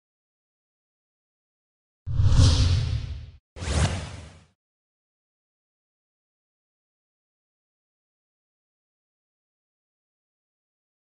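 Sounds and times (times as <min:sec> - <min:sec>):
whoosh sound effects: 0:02.1 - 0:04.4.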